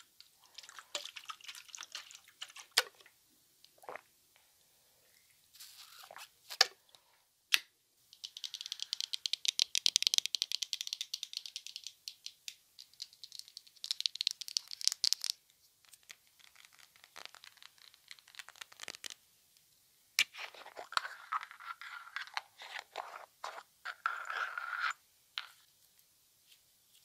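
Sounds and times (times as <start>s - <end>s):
sip through a straw: 5.1s - 6.3s.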